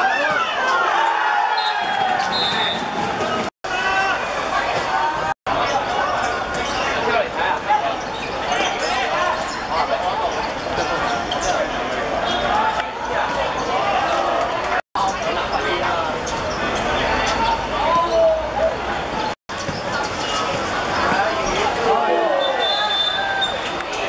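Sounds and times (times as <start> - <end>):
people shouting: 0.0 - 5.4.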